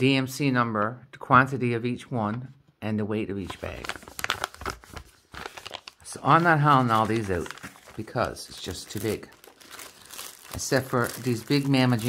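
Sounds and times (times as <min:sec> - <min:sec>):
paper rustling and crinkling: 0:03.4 - 0:12.0.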